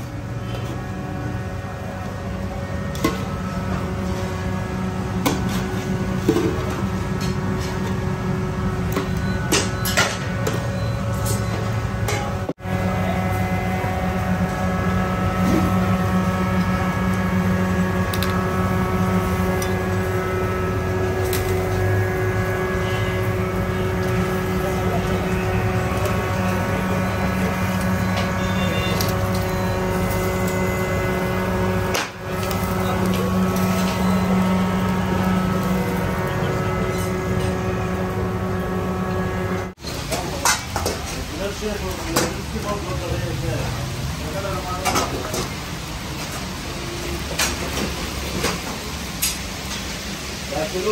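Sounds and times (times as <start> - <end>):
electric fan motor humming: 0.0 - 9.6, 10.2 - 50.9
low mechanical drone: 0.0 - 50.5.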